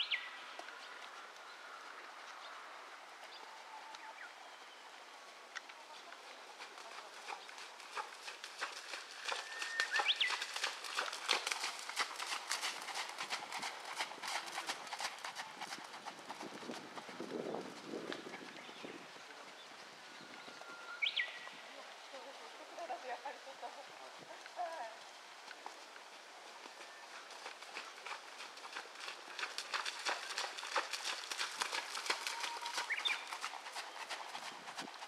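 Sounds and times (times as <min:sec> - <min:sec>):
horse hoofbeats on sand: 0:06.5 - 0:18.7, 0:26.6 - 0:35.0.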